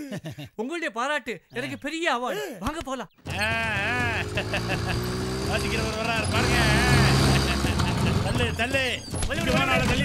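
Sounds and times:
small engine running: 0:03.3 - 0:10.0.

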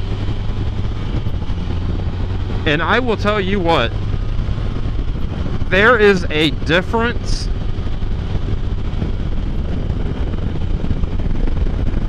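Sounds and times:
motorcycle engine and road noise: 0:00.0 - 0:12.0
wind buffeting on microphone: 0:00.0 - 0:12.0.

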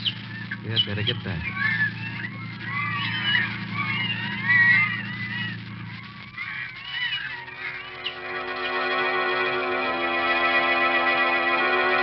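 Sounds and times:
gulls crying: 0:00.0 - 0:12.0
low steady drone: 0:00.0 - 0:12.0
organ music: 0:06.4 - 0:12.0.

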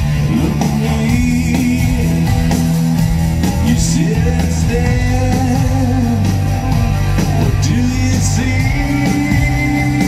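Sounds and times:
person singing: 0:00.0 - 0:02.7, 0:03.4 - 0:10.0
bass guitar: 0:00.0 - 0:10.0
electric guitars: 0:00.0 - 0:10.0.

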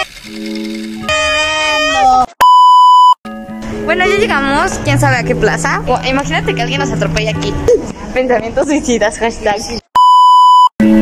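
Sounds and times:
electronic bleep tone: 0:00.0 - 0:03.2, 0:10.0 - 0:11.0
background music: 0:03.3 - 0:09.0.

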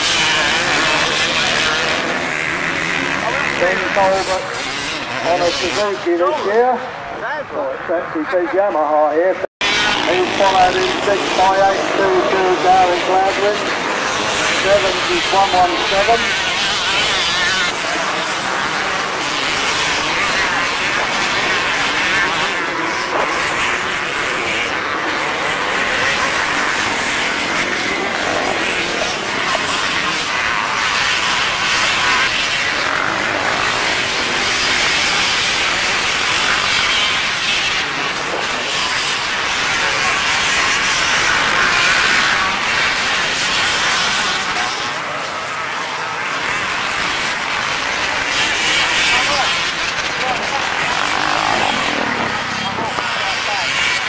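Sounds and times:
motocross bike engines revving: 0:00.0 - 0:54.0.

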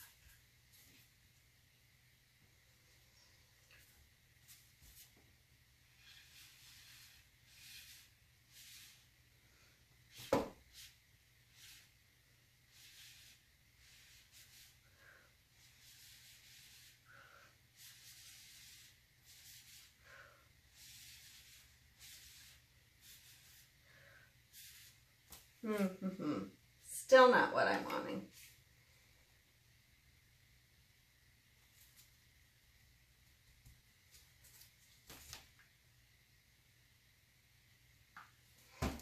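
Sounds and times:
stick scraping through paint: 0:05.9 - 0:09.1, 0:12.7 - 0:14.8, 0:15.6 - 0:17.0, 0:17.8 - 0:20.0, 0:20.7 - 0:23.8.

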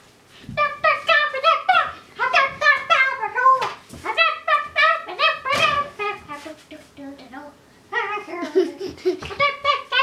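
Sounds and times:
girl singing high syllables: 0:00.5 - 0:10.0.

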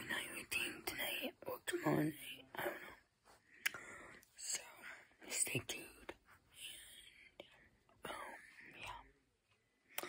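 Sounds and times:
girl whispering softly: 0:00.0 - 0:03.0, 0:04.4 - 0:09.2.

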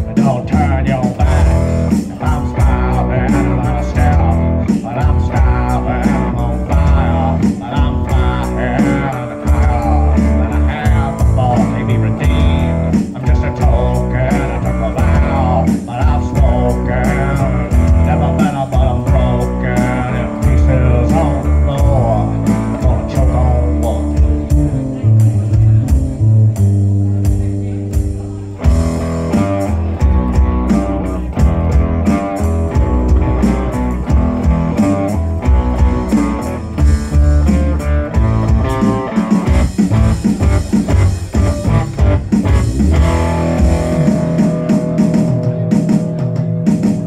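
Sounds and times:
double bass line: 0:00.0 - 0:47.0
drum beat: 0:00.0 - 0:47.0
electric guitar lead lines: 0:00.0 - 0:47.0.

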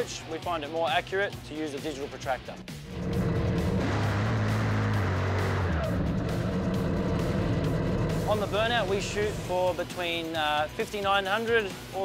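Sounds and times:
background music: 0:00.0 - 0:12.0
dragster engines running: 0:02.8 - 0:10.0.

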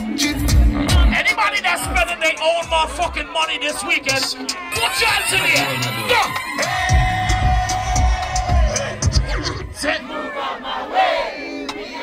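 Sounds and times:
crowd shouting together: 0:02.8 - 0:12.0.

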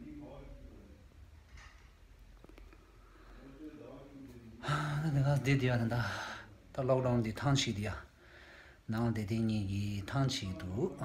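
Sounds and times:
man speaking: 0:03.4 - 0:08.1, 0:08.9 - 0:11.0.

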